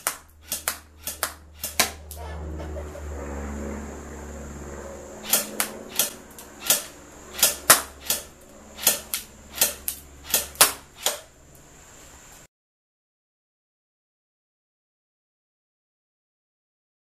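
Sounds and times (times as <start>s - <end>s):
airsoft pistol shots cracking: 0.0s - 2.0s, 5.2s - 11.3s
low hum: 0.0s - 12.5s.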